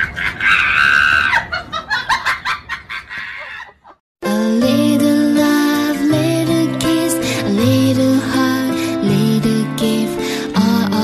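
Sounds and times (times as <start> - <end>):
quick laughter: 0.0 - 4.0
high-pitched scream: 0.4 - 1.5.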